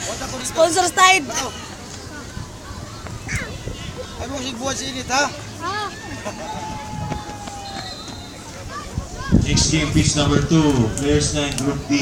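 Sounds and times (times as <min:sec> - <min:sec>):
distant chatter of children and adults: 0:00.0 - 0:12.0.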